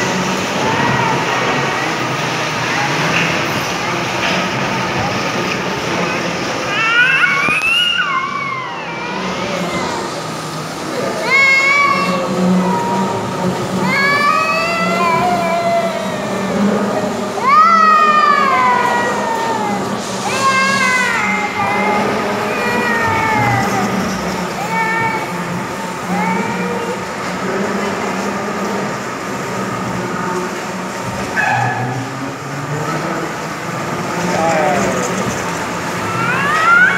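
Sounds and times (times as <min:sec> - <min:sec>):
bumper car rink din: 0:00.0 - 0:36.9
low hum of cars: 0:00.0 - 0:36.9
high voice crying out: 0:11.0 - 0:27.0, 0:35.9 - 0:36.9.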